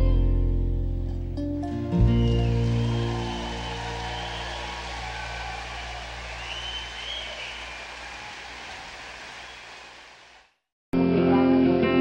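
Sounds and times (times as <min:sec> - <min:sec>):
faint whistle-like tones: 0:06.3 - 0:08.1.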